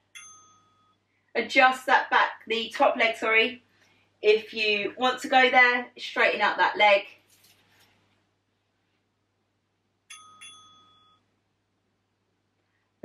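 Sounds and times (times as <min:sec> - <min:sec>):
high electronic timer dings: 0:00.1 - 0:01.0, 0:10.1 - 0:11.3.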